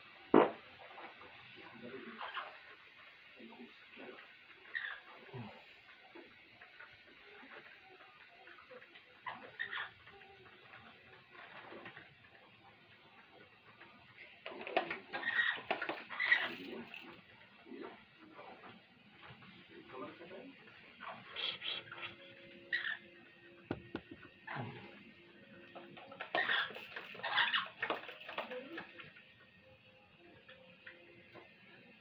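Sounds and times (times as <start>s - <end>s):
parrot making soft sounds: 21.0s - 23.0s.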